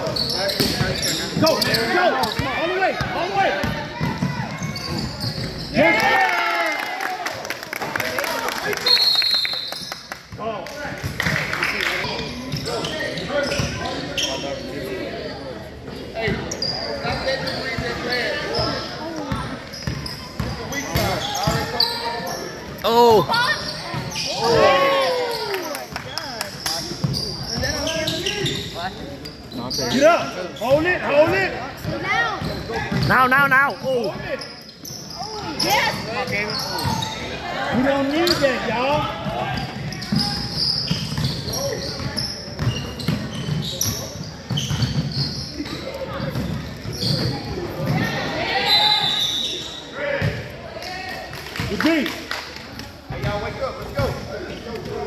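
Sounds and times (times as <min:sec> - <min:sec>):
people shouting and chattering: 0:00.0 - 0:55.0.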